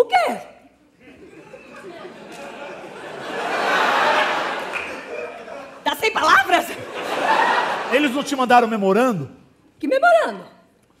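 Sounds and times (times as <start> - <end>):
audience murmuring and chattering: 0.6 - 8.4.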